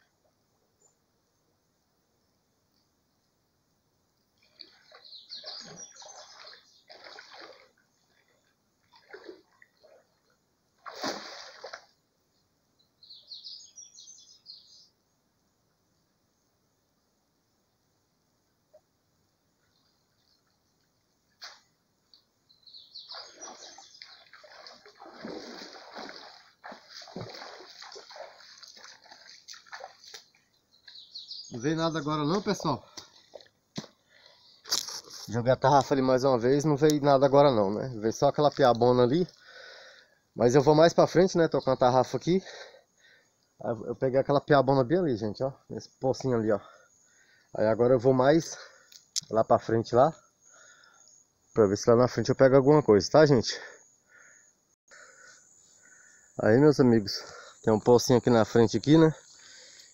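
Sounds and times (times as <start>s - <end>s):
water splashing and sloshing: 4.4s - 12.0s, 23.1s - 30.6s.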